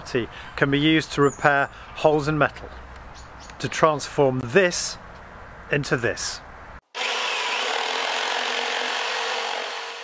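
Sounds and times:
wood being cut: 6.8s - 10.0s.

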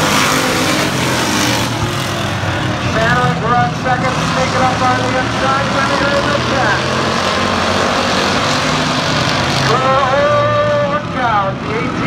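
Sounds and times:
race car engines at speed: 0.0s - 12.0s.

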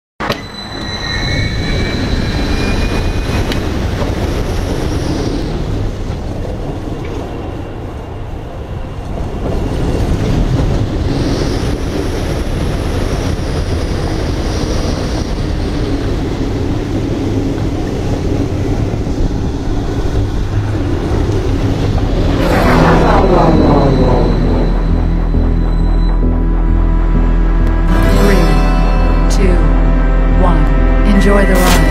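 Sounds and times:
roller coaster wheels rumbling: 0.2s - 27.9s
wind rush: 1.4s - 26.2s
rising launch whine: 22.1s - 29.0s.

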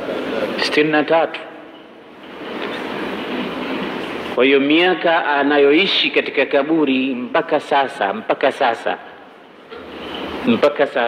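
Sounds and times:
rushing background noise: 0.0s - 11.0s.

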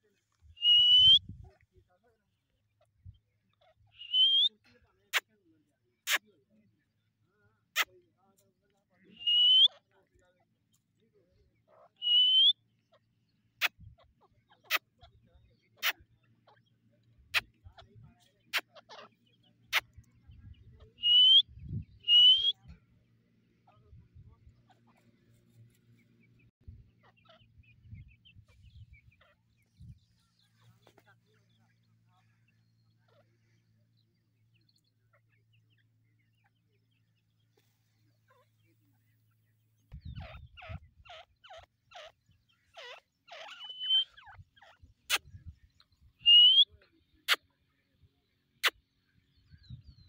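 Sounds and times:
birds chirping: 0.0s - 50.0s
bird whistled peep: 0.6s - 1.3s, 3.9s - 4.6s, 9.2s - 9.7s, 12.0s - 12.6s, 21.0s - 22.6s, 43.5s - 44.3s, 46.2s - 46.7s.

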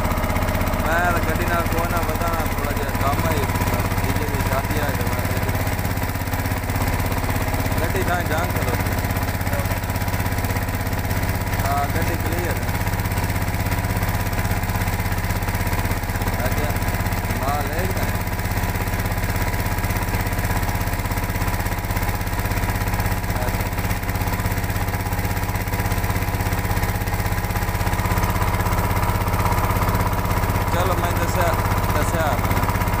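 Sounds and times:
boat engine droning: 0.0s - 33.0s.

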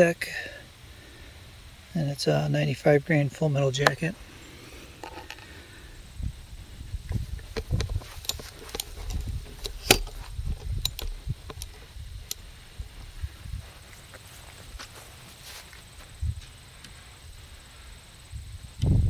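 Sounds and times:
camera handling noise: 5.0s - 5.5s, 7.1s - 12.4s.

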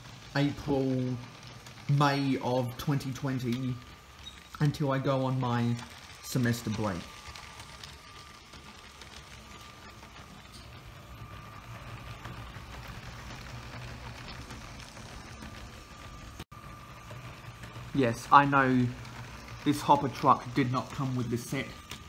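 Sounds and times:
electric motor hum with whine: 0.0s - 22.0s
toy train wheels ticking on track: 0.0s - 22.0s.

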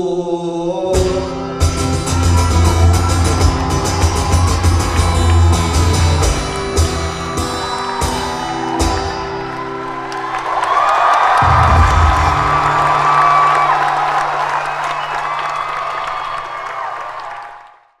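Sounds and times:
acoustic guitar strums: 1.0s - 9.6s
audience applause and cheering: 1.5s - 18.0s.

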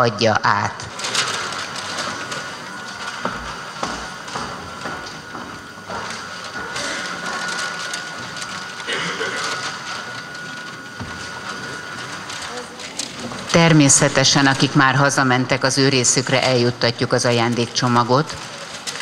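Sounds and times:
paper bags rustling: 0.8s - 19.0s
children murmuring: 8.9s - 10.1s.

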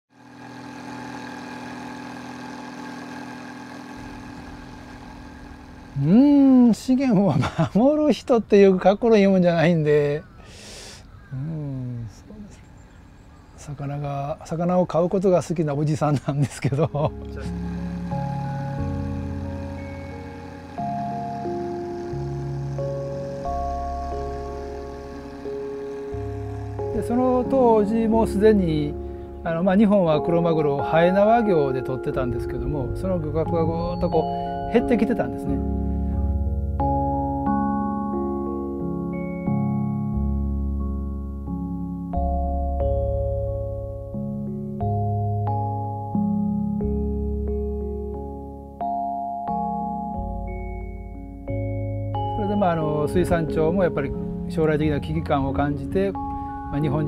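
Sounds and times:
slow sustained chords: 0.1s - 7.0s, 16.8s - 57.0s
boat engine idling: 0.1s - 7.2s, 17.1s - 31.4s.

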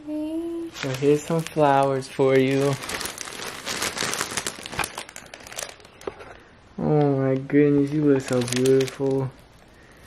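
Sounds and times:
plastic wrapping crinkling: 0.5s - 6.4s, 7.0s - 10.0s.

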